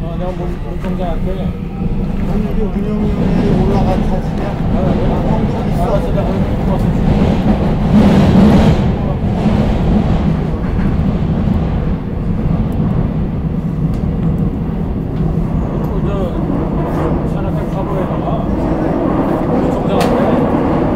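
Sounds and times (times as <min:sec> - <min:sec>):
subway train rumble: 0:00.0 - 0:20.9.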